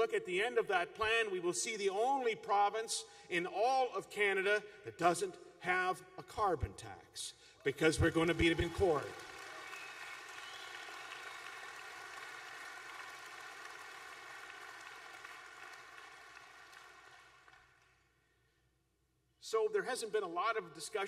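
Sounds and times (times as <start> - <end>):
audience applauding: 8.0 - 18.0.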